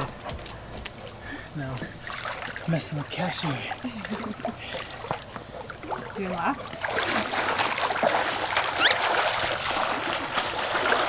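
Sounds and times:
pool water sloshing and lapping: 0:00.0 - 0:11.0.

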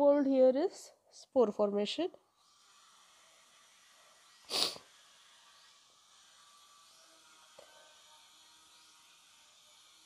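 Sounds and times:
sharp burst of breath: 0:04.5 - 0:04.9.

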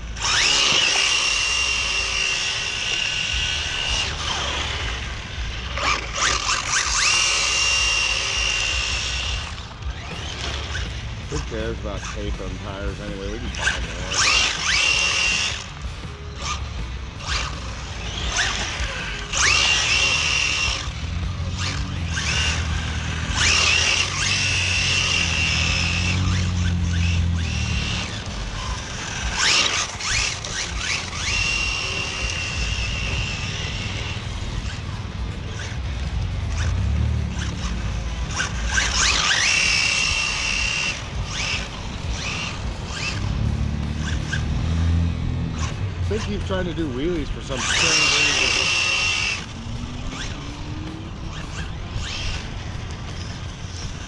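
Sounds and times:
rc car motors whining: 0:00.0 - 0:54.0.

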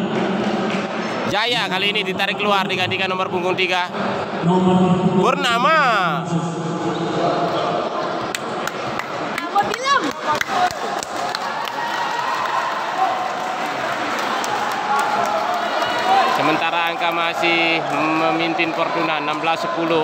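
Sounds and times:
crowd chatter and shouts: 0:00.0 - 0:20.0.

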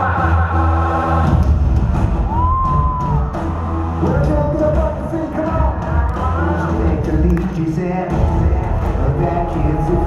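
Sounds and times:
amplified live band music: 0:00.0 - 0:10.0
crowd noise: 0:00.0 - 0:10.0.

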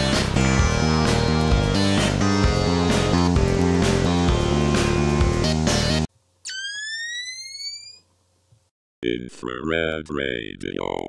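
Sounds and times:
music: 0:00.0 - 0:06.1.

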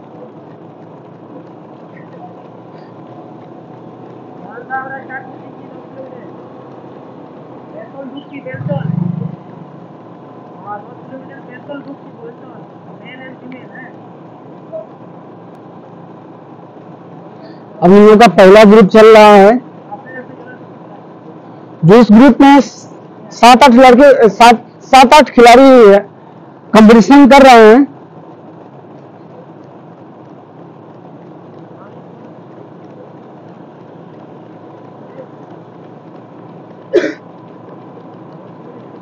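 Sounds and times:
vehicle engine and road noise: 0:00.0 - 0:39.0.

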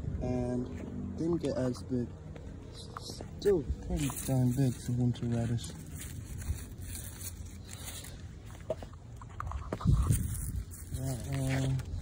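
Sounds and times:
leaves rustling and crinkling: 0:03.4 - 0:12.0.

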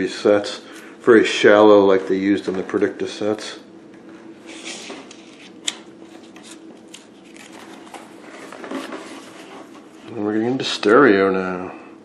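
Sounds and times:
faint steady hum: 0:00.0 - 0:12.0
paper pages rustling: 0:04.6 - 0:09.9
paper snapping: 0:06.4 - 0:07.7.

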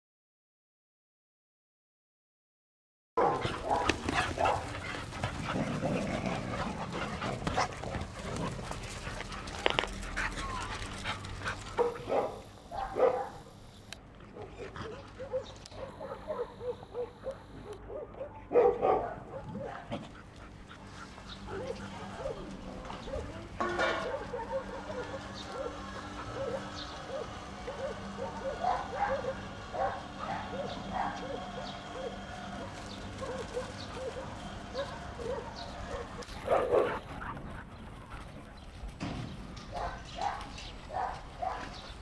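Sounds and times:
dogs barking and yipping: 0:03.2 - 0:42.0.

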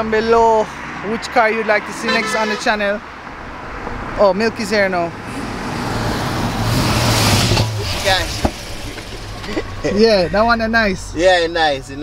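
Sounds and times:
car engine hum: 0:00.0 - 0:12.0
road noise: 0:00.0 - 0:12.0
person speaking: 0:01.5 - 0:03.0.

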